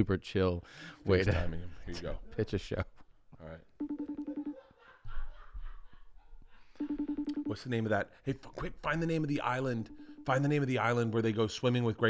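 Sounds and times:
phone call trill of beeps: 3.8 - 4.6, 6.8 - 7.8, 9.7 - 10.7.

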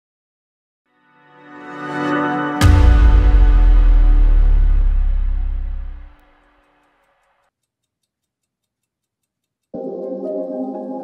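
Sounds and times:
music: 0.9 - 6.9, 9.8 - 11.0
wall clock ticking: 6.9 - 10.0.

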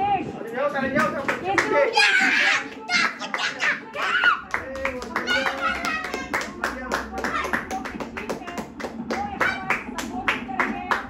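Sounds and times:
voices: 0.0 - 11.0
hands clapping: 1.0 - 1.8, 2.6 - 11.0.

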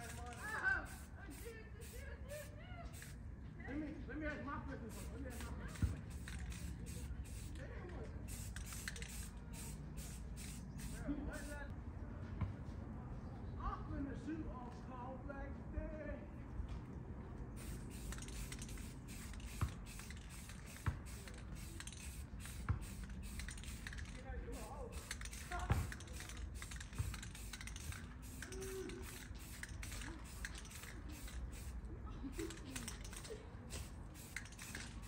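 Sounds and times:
spray paint can hissing: 0.0 - 3.2, 4.9 - 11.7, 17.6 - 35.0.

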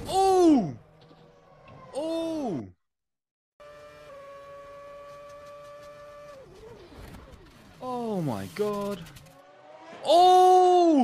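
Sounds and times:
racing car engine whine: 3.6 - 11.0.

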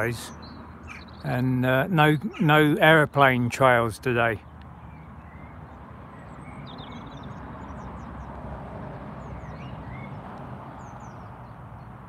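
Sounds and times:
birds chirping: 0.0 - 8.4, 9.1 - 12.0
steady outdoor rumble and hiss: 0.0 - 12.0.

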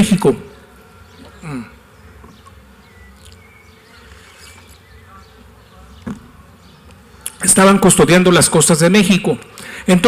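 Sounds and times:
low electrical buzz: 0.0 - 10.0.

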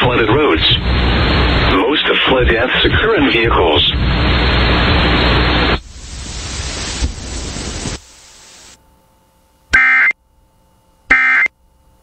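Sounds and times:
hiss: 5.8 - 8.8.

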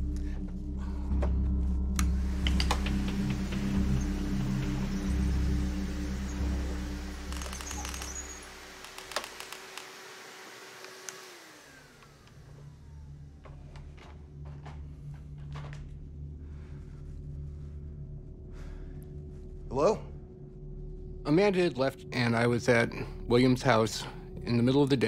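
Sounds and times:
vacuum cleaner motor whine: 2.0 - 14.3
sharp clicks: 7.2 - 10.0.

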